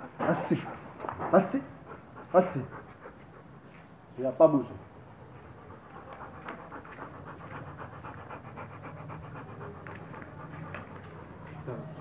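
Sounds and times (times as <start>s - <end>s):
dog panting fast: 0.0s - 4.0s, 4.6s - 12.0s.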